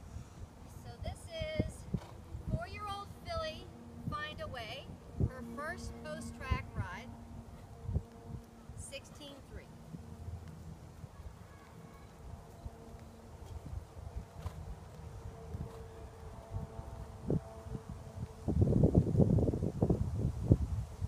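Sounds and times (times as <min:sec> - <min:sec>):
steady low hum: 0:00.0 - 0:21.0
wind buffeting microphone: 0:00.0 - 0:21.0.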